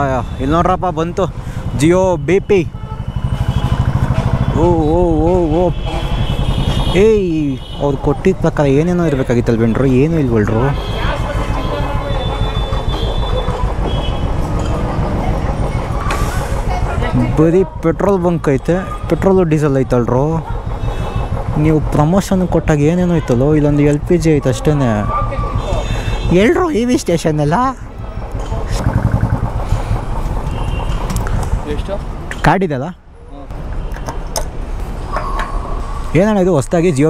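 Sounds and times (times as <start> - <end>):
motorcycle engine idling: 0.0 - 32.3.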